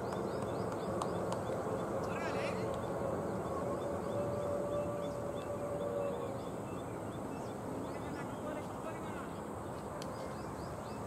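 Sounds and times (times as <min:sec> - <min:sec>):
steady rushing background: 0:00.0 - 0:10.7.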